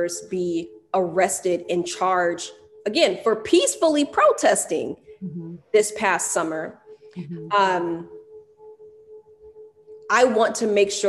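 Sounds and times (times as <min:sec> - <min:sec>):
faint pulsing tone: 0:00.0 - 0:11.0.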